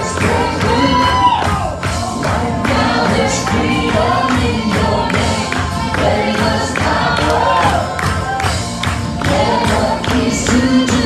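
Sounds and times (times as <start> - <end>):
backing singers: 0.0 - 11.0
band playing: 0.0 - 11.0
hands clapping: 0.0 - 11.0.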